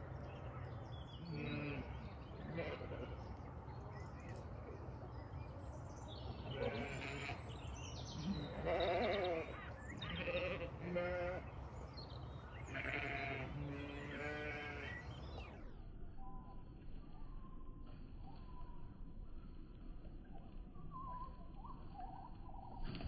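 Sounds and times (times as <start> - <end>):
sheep bleating: 1.2 - 3.2, 6.5 - 7.5, 8.2 - 11.5, 12.6 - 15.0.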